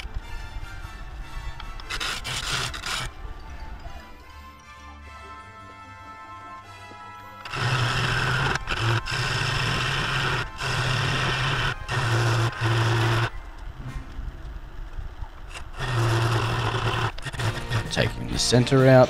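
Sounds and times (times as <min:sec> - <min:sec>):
gouge cutting wood on a lathe: 0:01.8 - 0:03.1, 0:07.4 - 0:13.3, 0:15.5 - 0:18.6.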